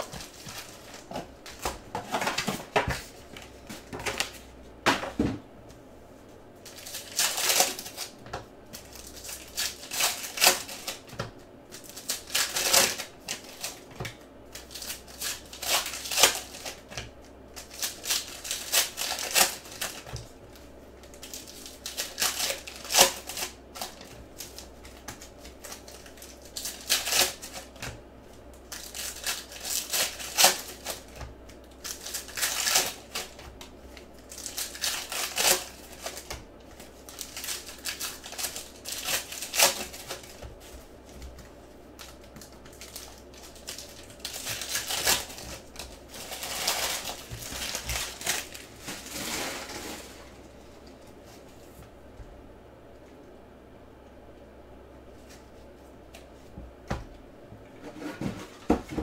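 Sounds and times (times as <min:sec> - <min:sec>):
foil wrappers crinkling: 0:00.0 - 0:04.4, 0:06.6 - 0:51.8.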